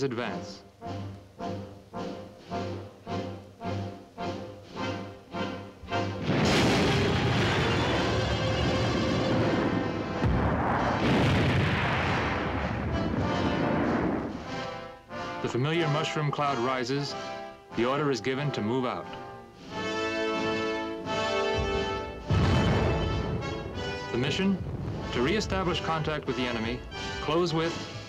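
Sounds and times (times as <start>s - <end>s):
loud explosion blast: 6.2s - 14.6s, 21.6s - 27.4s.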